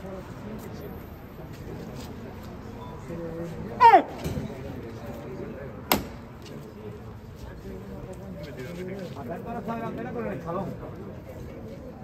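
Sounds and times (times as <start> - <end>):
murmur of voices: 0.0 - 12.0
man shouting: 3.8 - 4.2
sharp loud knock: 5.9 - 6.2.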